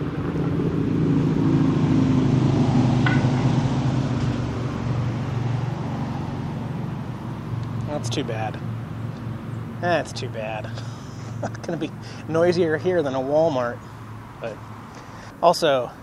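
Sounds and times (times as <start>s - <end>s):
vehicle passing by: 0.0s - 16.0s.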